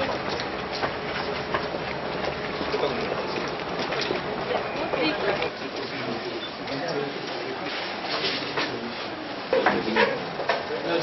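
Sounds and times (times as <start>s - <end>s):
chatter of many voices: 2.6s - 11.0s.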